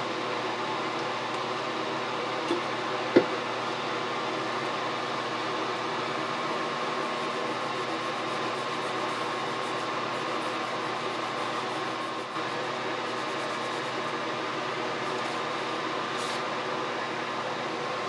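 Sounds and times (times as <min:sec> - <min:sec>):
exhaust fan droning: 0:00.0 - 0:18.0
cotton pad scrubbing circuit board: 0:06.4 - 0:14.1.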